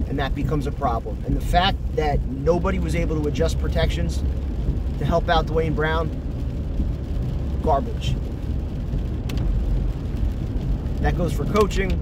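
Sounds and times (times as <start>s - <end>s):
car road noise inside cabin: 0.0s - 12.0s.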